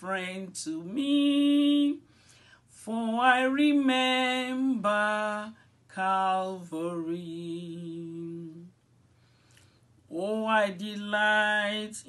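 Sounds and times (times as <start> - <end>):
faint breath: 2.0 - 2.8, 9.0 - 10.0.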